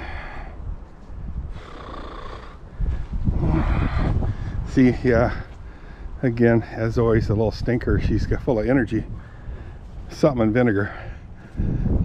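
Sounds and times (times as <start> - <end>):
breathy rush of air: 0.0 - 6.8, 9.1 - 10.1
wind buffeting microphone: 0.0 - 12.0.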